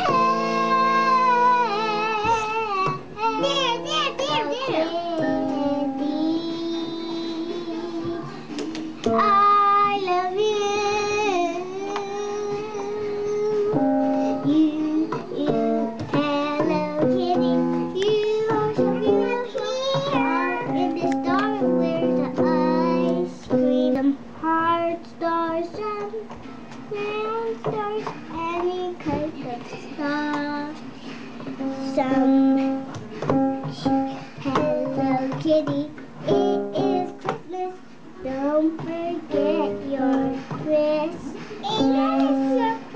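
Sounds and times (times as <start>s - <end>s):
young child singing: 0.0s - 30.8s, 31.6s - 42.9s
upright piano notes: 0.0s - 42.9s.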